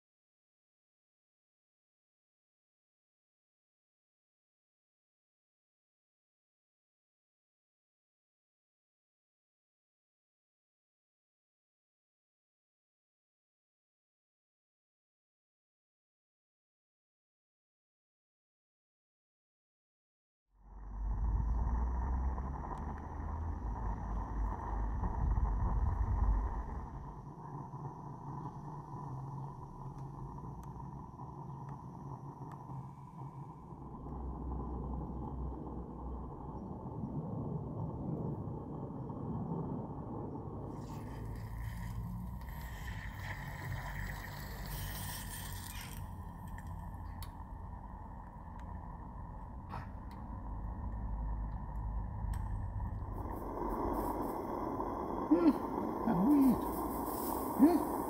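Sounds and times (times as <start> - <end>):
constant whistling tone: 20.9 - 58.0
steam hissing: 40.8 - 46.3, 53.2 - 58.0.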